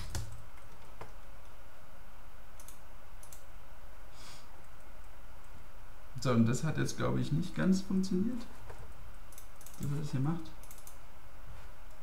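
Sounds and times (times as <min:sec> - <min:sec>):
steady low hum: 0:00.0 - 0:12.0
computer mouse clicking: 0:02.6 - 0:03.5, 0:08.7 - 0:10.0, 0:10.6 - 0:11.0.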